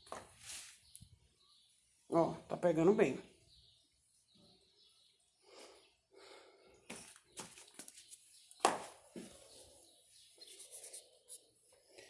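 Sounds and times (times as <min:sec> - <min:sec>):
soft rustles: 0:00.3 - 0:00.9.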